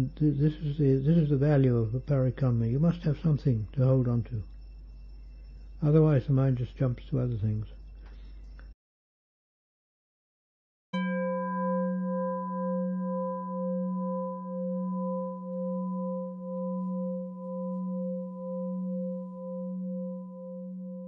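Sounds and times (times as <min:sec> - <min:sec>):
singing bowl ringing: 0:11.0 - 0:21.0.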